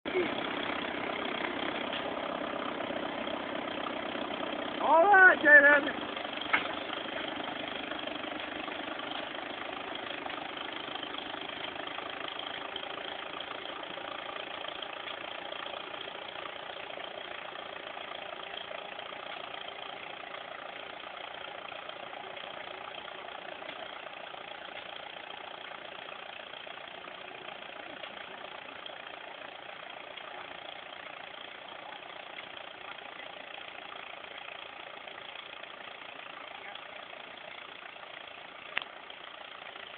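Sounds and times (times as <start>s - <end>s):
tractor engine running: 0.0s - 39.9s.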